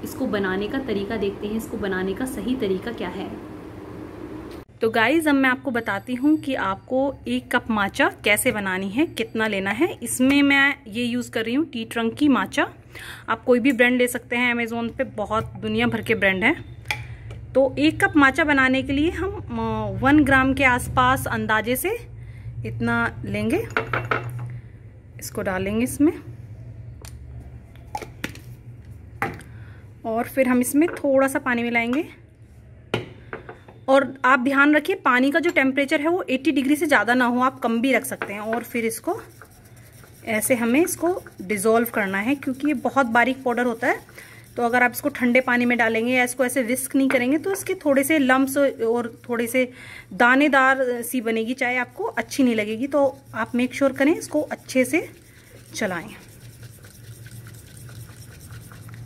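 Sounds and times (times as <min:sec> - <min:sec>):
whisk brushing in a bowl: 0:36.5 - 0:59.0.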